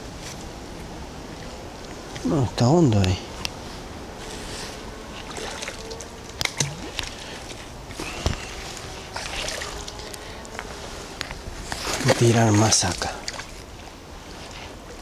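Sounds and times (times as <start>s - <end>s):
water sloshing and trickling: 2.6s - 15.0s.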